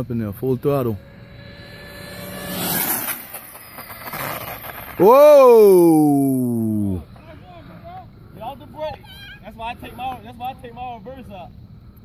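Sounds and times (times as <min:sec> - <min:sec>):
rc car high whine: 0:00.0 - 0:12.0.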